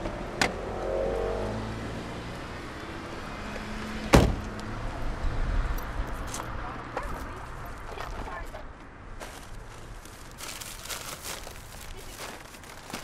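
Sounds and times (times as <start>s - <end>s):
car door slamming: 4.1s - 4.5s.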